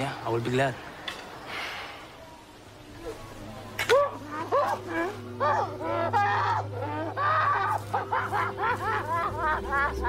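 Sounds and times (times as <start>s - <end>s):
low music drone: 3.0s - 10.0s
women wailing and sobbing: 3.8s - 10.0s.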